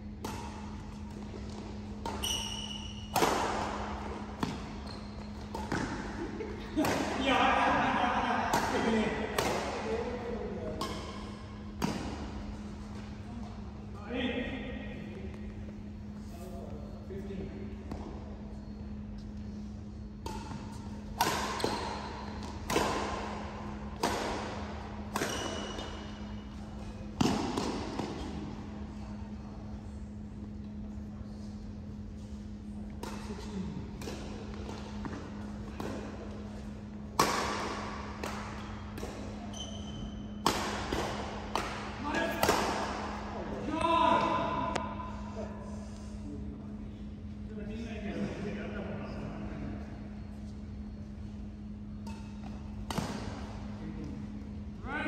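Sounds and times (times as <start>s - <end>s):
racket hitting shuttlecock: 0.2s - 7.2s, 8.5s - 10.0s, 10.6s - 12.6s, 20.2s - 26.5s, 27.2s - 28.4s, 33.0s - 43.3s, 52.0s - 53.7s
players' voices: 5.8s - 12.2s, 41.6s - 50.0s.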